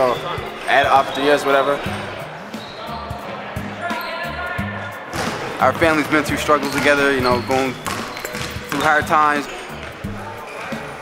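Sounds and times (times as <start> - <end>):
basketballs bouncing on gym floor: 5.1 - 10.2.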